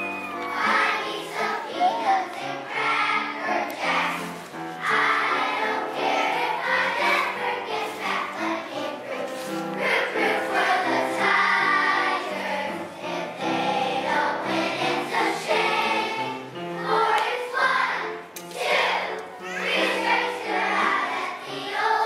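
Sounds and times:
children's choir singing: 0.0 - 22.0.

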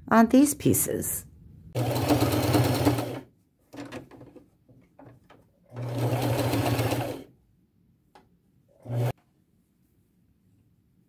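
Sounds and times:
sewing machine stitching: 1.8 - 4.3, 5.7 - 7.3, 8.8 - 9.2.

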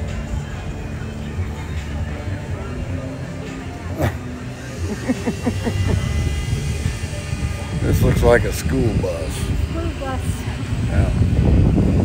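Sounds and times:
motor rumbling: 0.0 - 12.0
falling-pitch laughs: 4.8 - 6.1.

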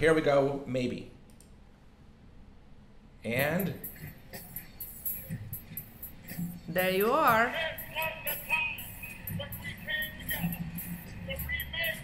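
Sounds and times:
computer mouse clicks: 1.3 - 1.6.

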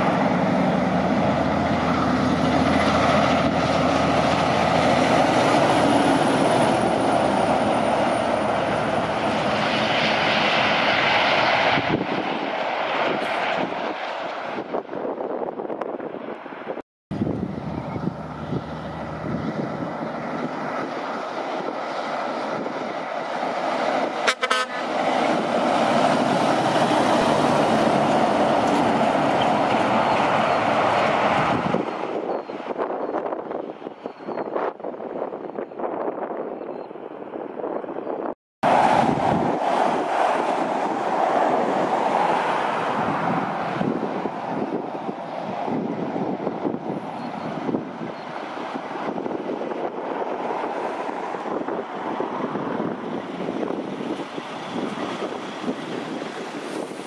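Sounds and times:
trucks passing on highway: 0.0 - 57.0.

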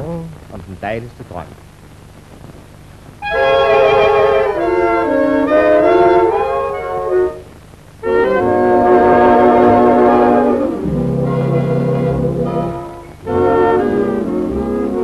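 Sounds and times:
swing band reeds and brass: 8.0 - 15.0.

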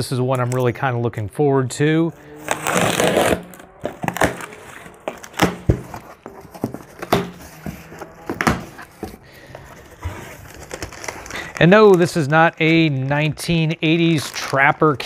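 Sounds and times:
packing tape ripping: 2.2 - 12.9, 14.1 - 15.0
cardboard flaps knocking and crinkling: 3.8 - 9.2.

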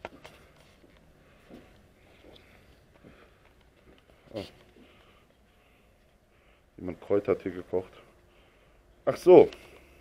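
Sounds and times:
faint footsteps: 0.0 - 6.3.

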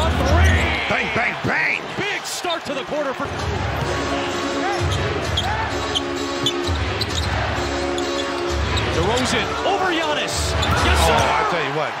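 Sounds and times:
arena music over loudspeakers: 0.0 - 12.0
crowd noise: 0.0 - 12.0
sneaker squeaks: 4.7 - 7.4, 8.0 - 9.3, 10.5 - 10.8.

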